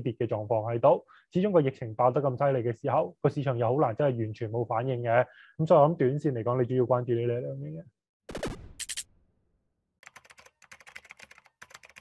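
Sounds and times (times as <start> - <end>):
keyboard typing clicks: 10.0 - 12.0.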